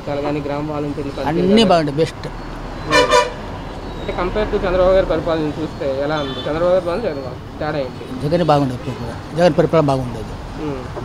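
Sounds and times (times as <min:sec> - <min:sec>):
vehicle horn toots: 0:02.8 - 0:03.6, 0:06.1 - 0:06.7.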